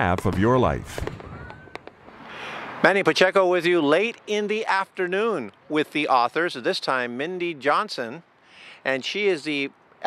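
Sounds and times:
fireworks popping: 0.0 - 2.4
firework whistle: 0.9 - 2.8
fireworks crackling hiss: 0.9 - 3.0.

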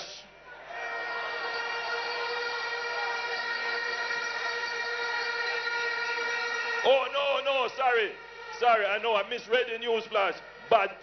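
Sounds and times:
horns blowing a long chord: 0.7 - 11.0.

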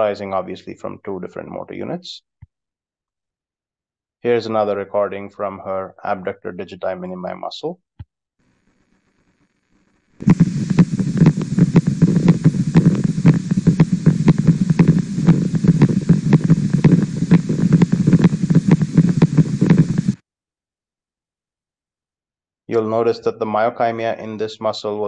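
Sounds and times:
rapid sharp pops: 10.2 - 20.2
steady low hum: 10.2 - 20.2.

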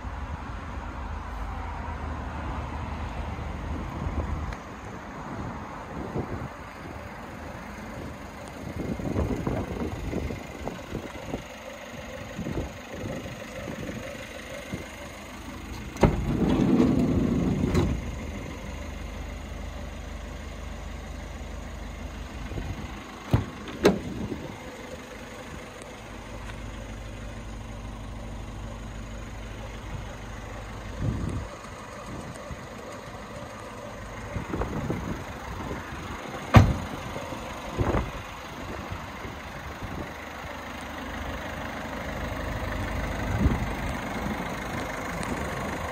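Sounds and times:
van engine starting and idling: 0.0 - 45.9.

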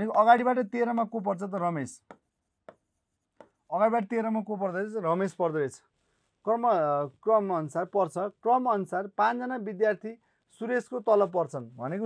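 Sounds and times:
man speaking: 0.0 - 2.2, 3.7 - 12.0
pen tapping on writing board: 0.9 - 3.6.

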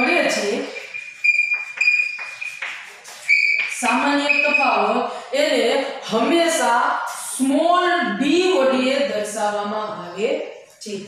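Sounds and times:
chalk scratching on blackboard: 0.0 - 4.8.

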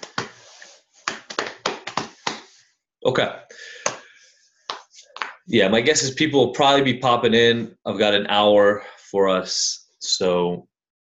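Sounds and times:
sharp irregular taps: 1.0 - 2.5, 4.7 - 5.5.

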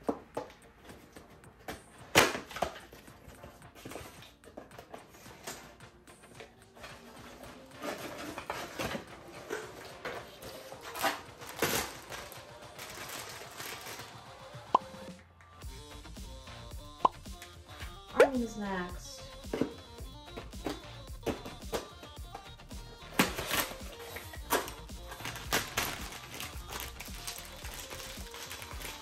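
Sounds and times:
soft background music: 0.0 - 29.0
packaging rustling and crinkling: 6.8 - 14.4, 23.2 - 29.0.

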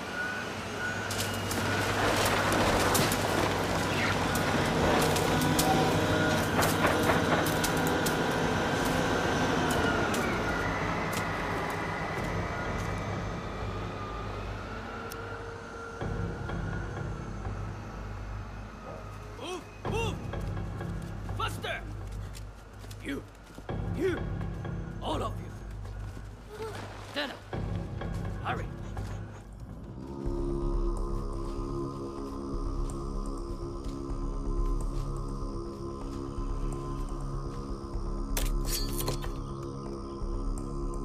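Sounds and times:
diesel excavator engine running: 0.0 - 22.8.

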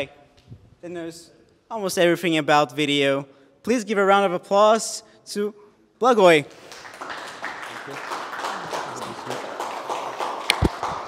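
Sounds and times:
audience applauding: 6.5 - 11.0.

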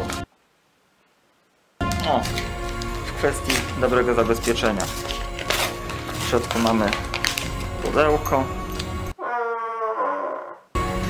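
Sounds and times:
dog-like whining call: 9.2 - 10.7.

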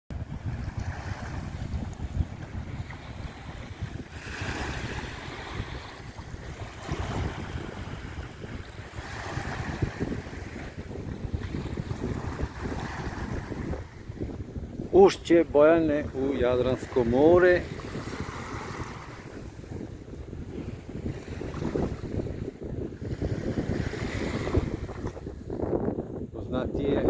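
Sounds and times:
small waves washing onto sand: 0.1 - 25.6
wind buffeting microphone: 0.1 - 27.0.

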